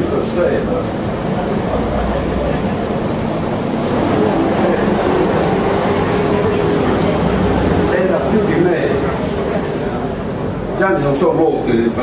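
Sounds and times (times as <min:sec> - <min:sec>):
man speaking into a microphone: 0:10.7 - 0:12.0.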